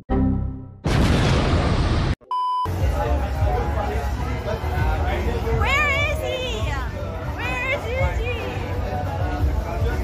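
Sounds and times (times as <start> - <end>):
short electronic beep: 2.2 - 2.7
street noise with crowd chatter: 2.7 - 10.0.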